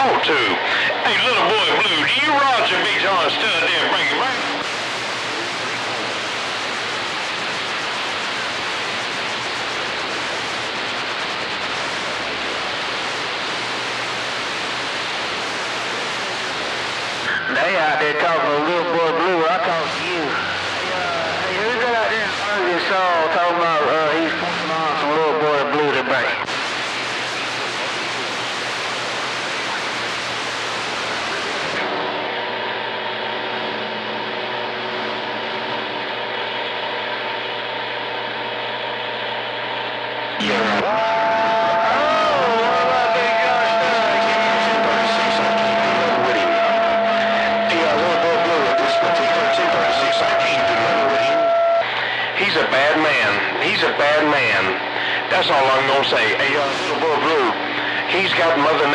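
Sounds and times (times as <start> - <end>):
warbling radio voices: 0.0 - 13.4, 15.4 - 31.8, 40.4 - 58.9
radio static hiss: 0.0 - 58.9.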